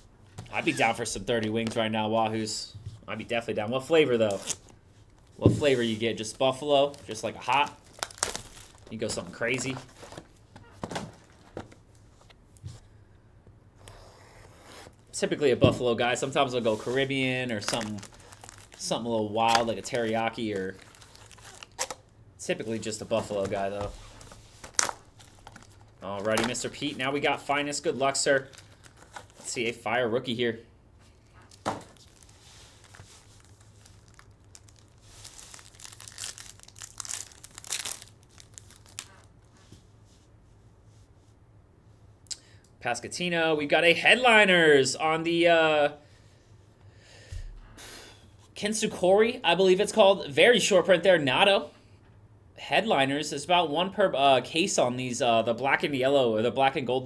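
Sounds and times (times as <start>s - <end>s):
foil wrapper tearing and crinkling: 6.8s - 9.0s, 17.5s - 18.9s, 20.5s - 22.1s, 24.2s - 26.4s, 31.5s - 39.3s.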